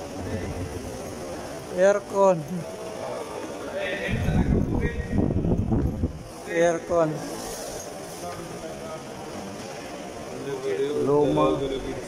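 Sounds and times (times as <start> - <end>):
airflow buffeting microphone: 4.0 - 8.1.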